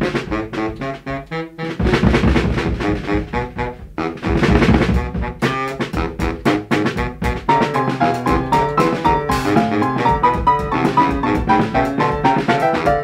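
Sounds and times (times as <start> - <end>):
jazz band playing: 0.0 - 13.0.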